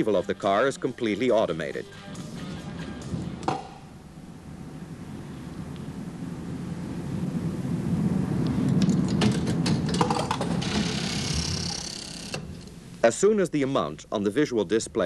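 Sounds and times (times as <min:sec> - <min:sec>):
high whirring hiss: 0:00.0 - 0:15.0
low mechanical rumble: 0:02.6 - 0:15.0.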